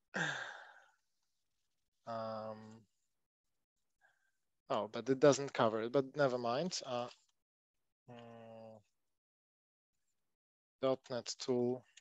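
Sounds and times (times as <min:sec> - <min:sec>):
man sighing: 0:00.2 - 0:00.8.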